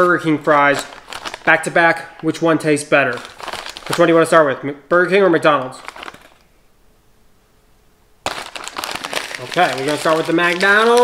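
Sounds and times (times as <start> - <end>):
paper bag crinkling: 0.0 - 2.4, 3.0 - 4.4, 5.7 - 6.4, 8.2 - 11.0.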